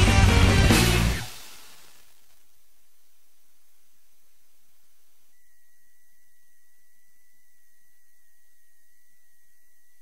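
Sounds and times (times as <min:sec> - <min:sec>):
faint steady hiss: 0:00.0 - 0:10.0
second steady tone: 0:04.1 - 0:10.0
thin high tone: 0:05.2 - 0:10.0.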